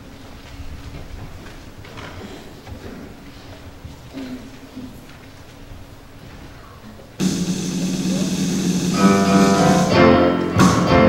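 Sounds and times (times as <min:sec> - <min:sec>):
worship band holding a chord: 0:07.2 - 0:11.0.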